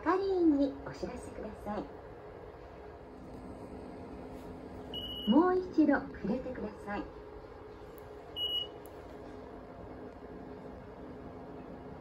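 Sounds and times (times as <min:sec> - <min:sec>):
card reader beep: 0:04.9 - 0:05.4, 0:08.4 - 0:08.8.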